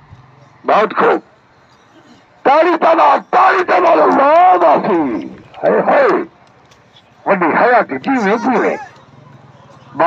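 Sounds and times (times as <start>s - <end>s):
man shouting drawn-out calls: 2.0s - 6.3s, 7.3s - 9.0s.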